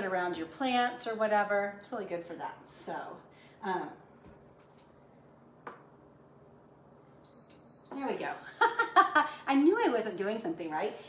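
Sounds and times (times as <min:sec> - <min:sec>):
high-pitched appliance beep: 0:07.2 - 0:10.6.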